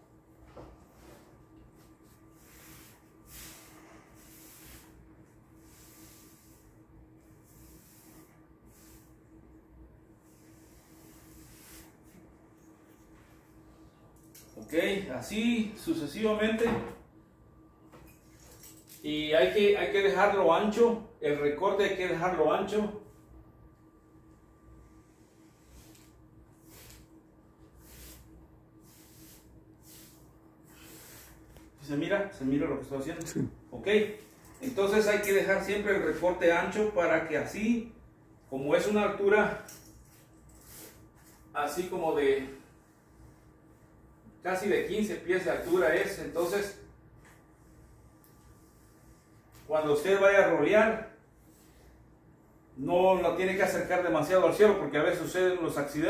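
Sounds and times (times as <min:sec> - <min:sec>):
faint steady hum: 0:00.0 - 0:56.0
paintbrush swishing on wall: 0:00.5 - 0:09.3, 0:10.1 - 0:13.6, 0:24.8 - 0:31.8, 0:40.1 - 0:41.8, 0:44.6 - 0:46.6, 0:47.2 - 0:49.8.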